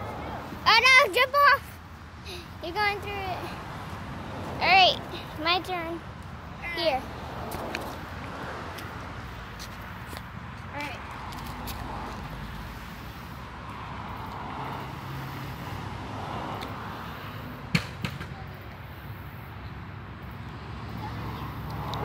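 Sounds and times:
outdoor background noise: 0.0 - 22.0.

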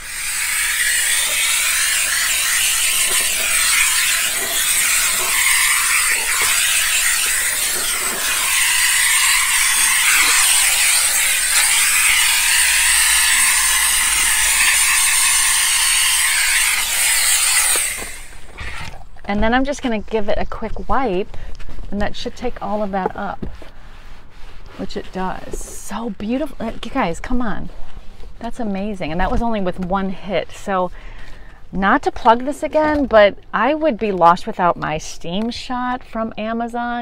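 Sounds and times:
steam cleaner hissing: 0.0 - 18.8.

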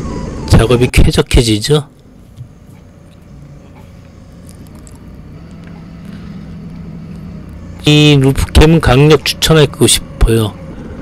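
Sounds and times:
forklift engine running: 0.0 - 11.0.

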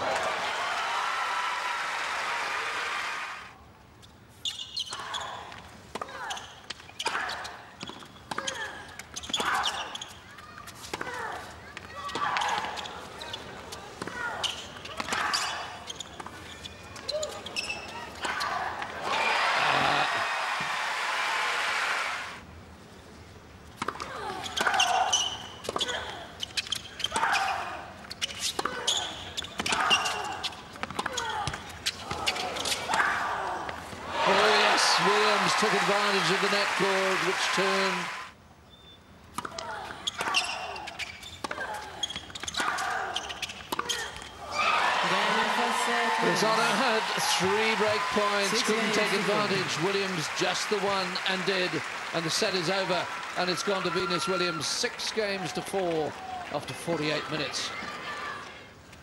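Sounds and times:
crowd applause: 0.0 - 3.6, 19.0 - 22.4, 34.0 - 38.3, 44.6 - 56.8.

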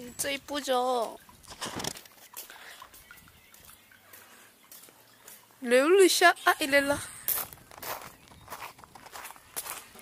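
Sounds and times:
footsteps on gravel: 7.0 - 10.0.

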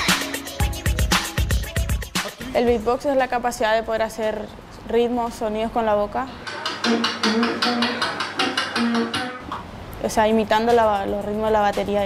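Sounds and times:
beatboxing into a microphone: 6.4 - 9.5.

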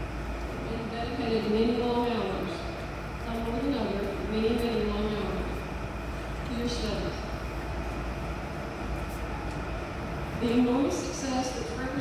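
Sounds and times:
gymnasium hall background rumble: 0.0 - 12.0.

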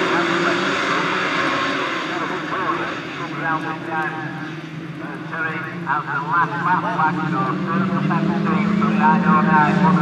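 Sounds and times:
racing car engines revving: 0.0 - 10.0.

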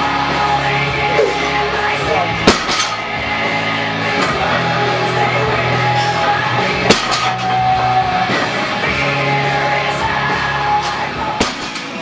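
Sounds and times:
background music: 0.0 - 12.0
barbell clanking down: 2.4 - 3.2, 6.8 - 7.8, 11.3 - 12.0.

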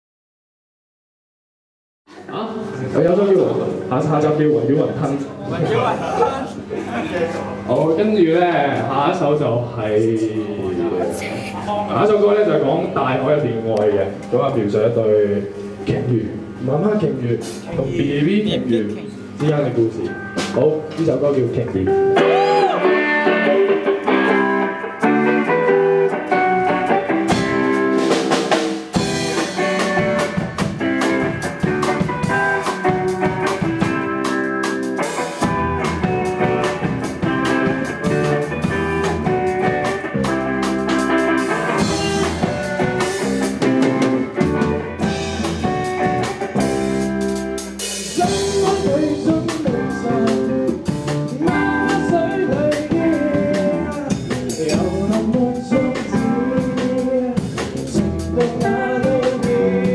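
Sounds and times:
drum kit: 15.5 - 59.9
electric guitars: 17.4 - 21.0, 21.6 - 59.9.

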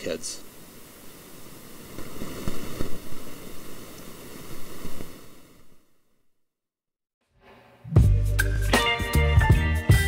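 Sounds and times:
microphone hiss: 0.0 - 6.5
rustling handling noise: 1.8 - 5.3.

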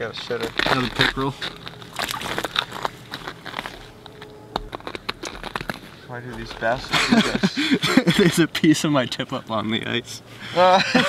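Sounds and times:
ice crunching and crackling: 0.0 - 7.4.

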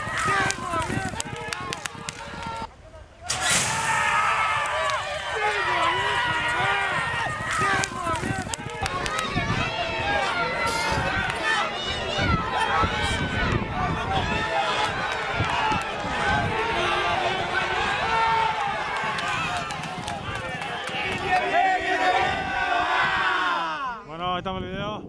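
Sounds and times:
crowd shouting excitedly: 0.0 - 2.7, 3.3 - 24.1
horses galloping: 14.8 - 21.5.

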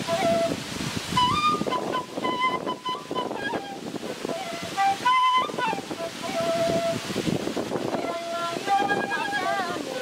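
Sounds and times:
flute playing slow melody: 0.0 - 10.0
waterfall rushing: 0.0 - 10.0.

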